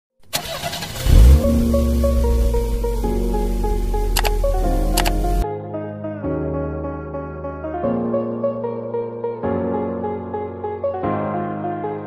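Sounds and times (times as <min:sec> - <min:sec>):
car engine revving: 0:00.3 - 0:05.4
music with bass drone and melody: 0:01.0 - 0:12.0.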